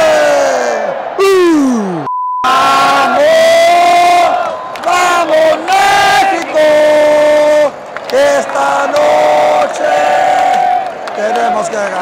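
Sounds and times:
man shouting: 0:00.0 - 0:02.0, 0:02.6 - 0:04.4
stadium crowd shouting: 0:00.0 - 0:12.0
censor bleep tone: 0:01.8 - 0:02.5.

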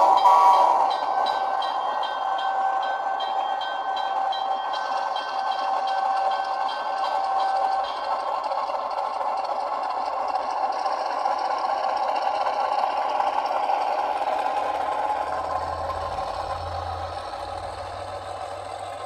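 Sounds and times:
diesel engine running: 0:08.3 - 0:19.0.

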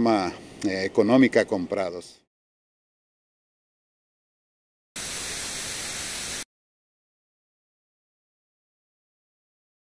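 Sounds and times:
television static hiss: 0:05.0 - 0:06.4.

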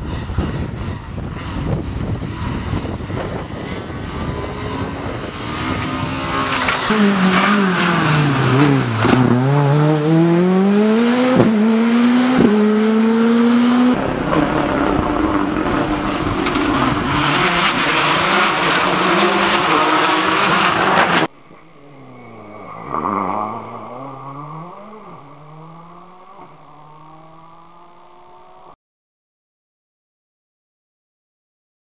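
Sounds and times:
rally car engine revving: 0:00.0 - 0:21.3, 0:22.2 - 0:28.8
car passing by: 0:01.4 - 0:21.3.

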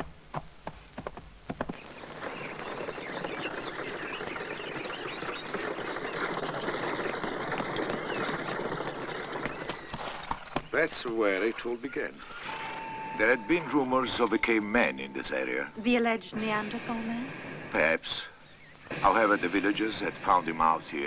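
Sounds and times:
horse hooves clopping: 0:00.0 - 0:16.6
birds chirping: 0:00.0 - 0:21.0.

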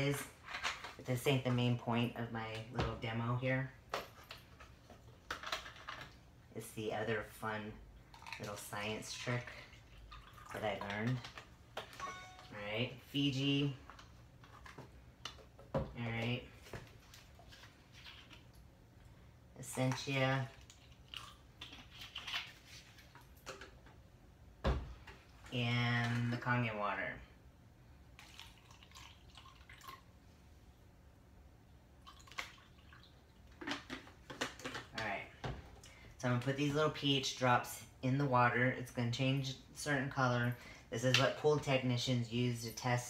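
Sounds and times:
plastic bottles and cups clicking: 0:32.1 - 0:35.0.

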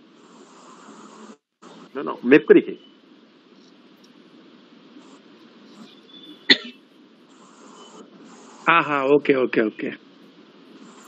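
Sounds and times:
faint background hiss: 0:00.0 - 0:11.0
person coughing: 0:06.5 - 0:06.8.

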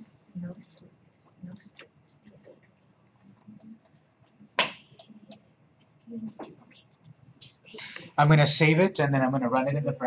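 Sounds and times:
faint room murmur: 0:00.0 - 0:10.0.

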